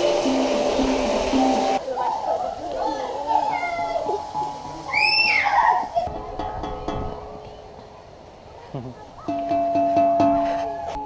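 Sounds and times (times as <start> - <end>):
child squealing: 4.9 - 6.1
steel tongue drum notes: 9.3 - 11.0.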